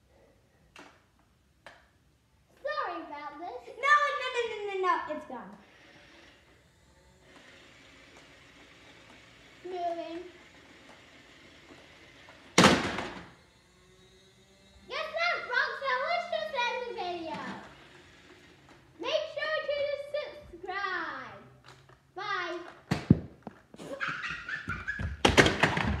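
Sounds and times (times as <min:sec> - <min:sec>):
sharp thunk: 0:12.6 - 0:13.2.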